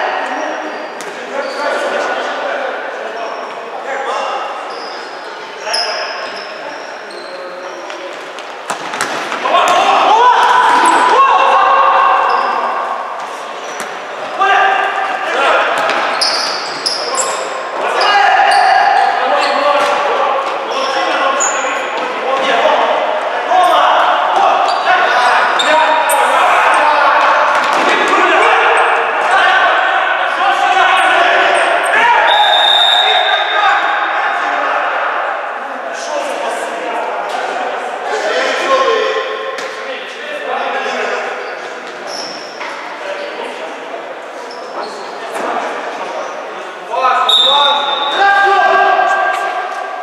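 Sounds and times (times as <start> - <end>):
players shouting in echoing hall: 0.0 - 50.0
sneaker squeaks on wooden floor: 4.6 - 9.3, 15.8 - 20.0, 41.4 - 42.8.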